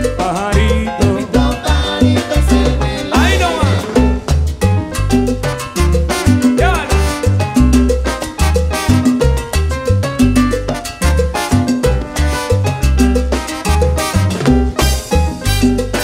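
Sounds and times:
salsa band playing: 0.0s - 16.0s.

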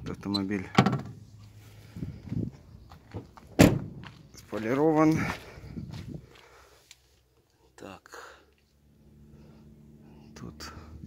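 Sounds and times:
soft footsteps: 2.2s - 7.3s.

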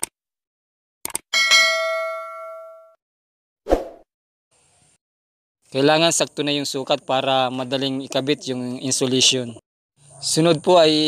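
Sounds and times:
notification bell ding: 1.4s - 3.0s.

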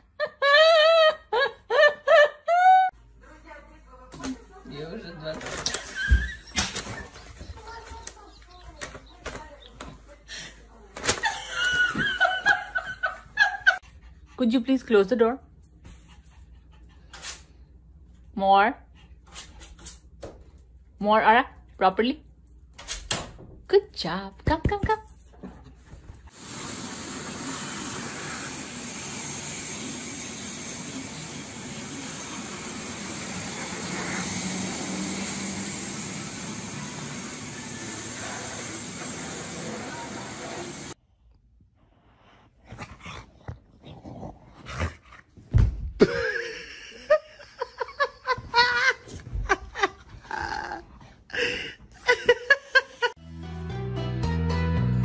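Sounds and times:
hose spraying water: 26.3s - 41.0s.

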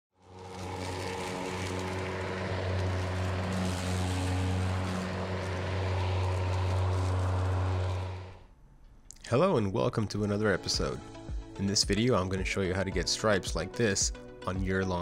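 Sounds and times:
electric lawn mower cutting grass: 0.1s - 8.5s.

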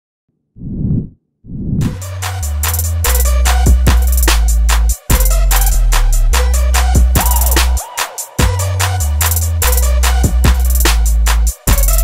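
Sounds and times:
music track: 1.8s - 12.0s.

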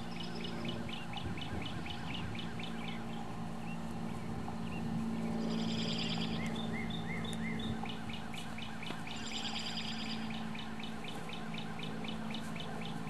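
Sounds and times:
songbirds chirping: 0.0s - 13.0s
steady low hum: 0.0s - 13.0s
buzzy bird trill: 4.7s - 13.0s.

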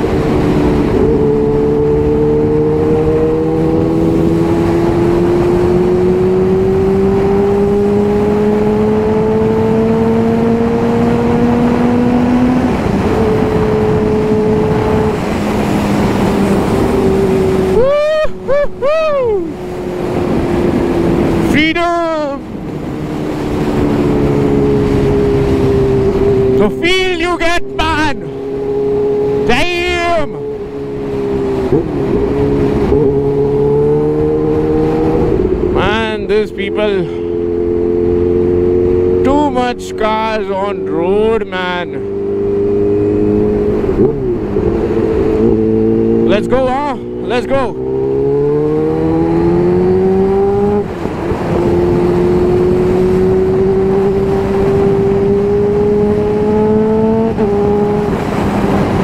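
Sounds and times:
motorcycle engine revving: 0.0s - 59.0s
wind rushing over microphone: 0.0s - 59.0s.

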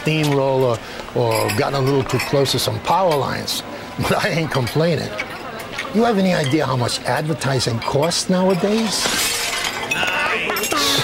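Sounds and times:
crockery breaking: 8.5s - 11.0s.

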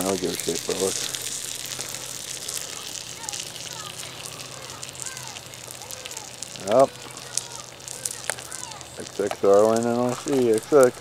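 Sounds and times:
sharp pops: 0.0s - 11.0s
wood fire crackling: 0.0s - 11.0s.

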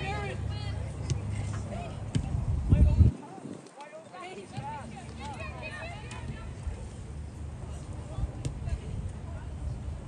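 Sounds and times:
steady low rumble: 0.0s - 3.5s.

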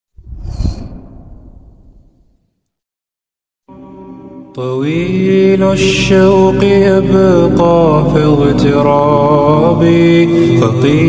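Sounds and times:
whoosh with deep rumble: 0.2s - 2.4s.

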